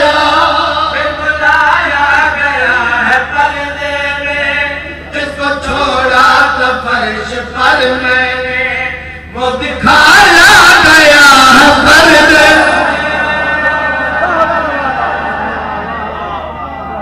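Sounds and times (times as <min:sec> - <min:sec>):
man chanting through loudspeaker: 0:00.0 - 0:17.0
steady low hum: 0:00.0 - 0:17.0.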